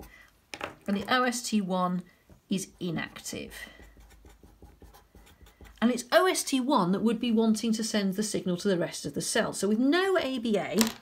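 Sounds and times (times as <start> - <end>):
felt-tip marker writing: 3.3 - 5.8.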